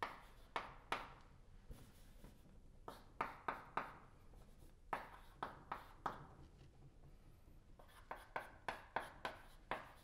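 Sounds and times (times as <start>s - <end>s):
chalk strokes on blackboard: 0.0s - 1.1s, 1.7s - 6.4s, 7.7s - 10.0s.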